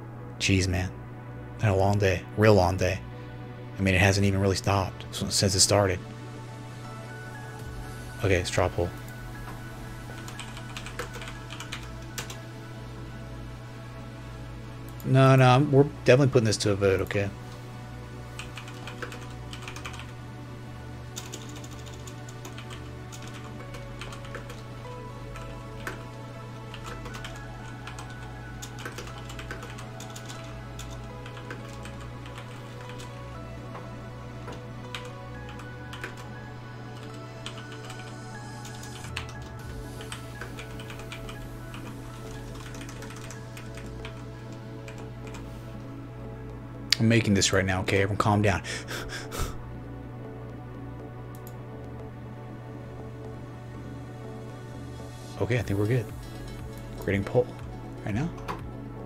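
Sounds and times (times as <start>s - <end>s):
quiet background music: 0.0s - 59.0s
typing on computer keyboard: 10.2s - 12.4s, 18.4s - 20.1s, 21.2s - 24.6s, 26.8s - 33.1s, 42.6s - 44.2s.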